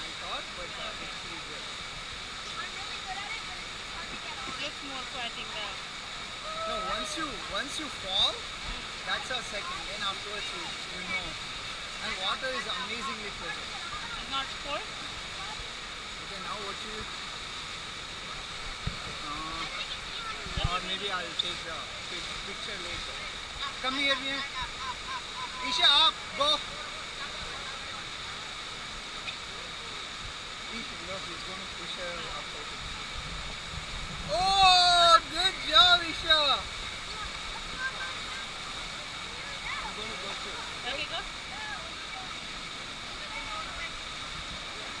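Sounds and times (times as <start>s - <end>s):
water rushing: 0.0s - 45.0s
person calling out loudly: 6.4s - 7.2s, 34.3s - 36.0s.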